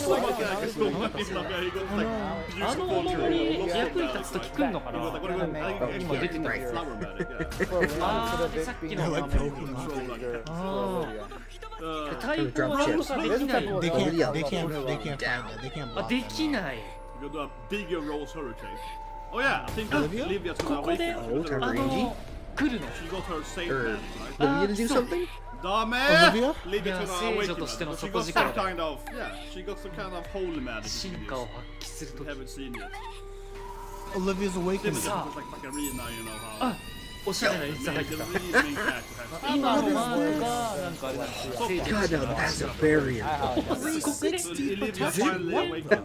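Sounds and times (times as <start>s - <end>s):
soundtrack music: 0.0s - 32.5s.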